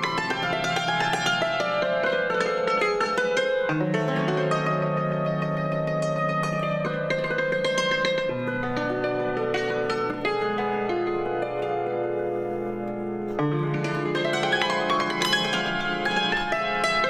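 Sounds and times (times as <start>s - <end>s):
cimbalom struck notes: 0.0s - 17.0s.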